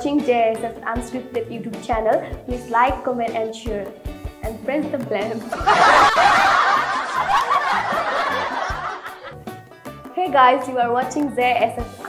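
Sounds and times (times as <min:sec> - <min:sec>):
woman laughing: 0:05.6 - 0:09.3.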